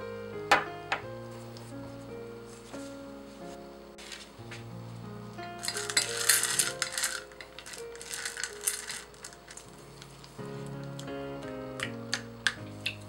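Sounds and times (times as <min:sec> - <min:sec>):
soft background music: 0:00.0 - 0:13.0
chocolate pieces clinking in metal bowl: 0:05.6 - 0:09.7.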